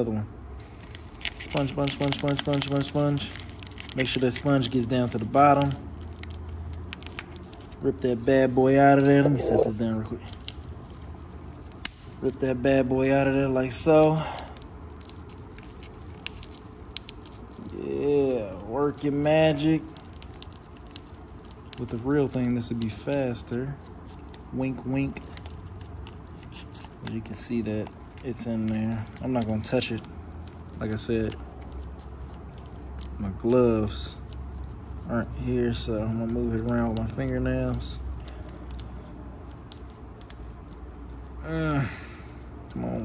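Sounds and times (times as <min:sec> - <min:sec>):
low steady hum: 0:00.0 - 0:43.0
foil sachet crinkling: 0:00.6 - 0:12.4, 0:13.5 - 0:43.0.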